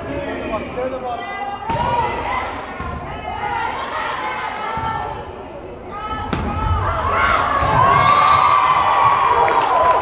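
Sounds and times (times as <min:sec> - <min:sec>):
spectators cheering: 0:07.0 - 0:10.0.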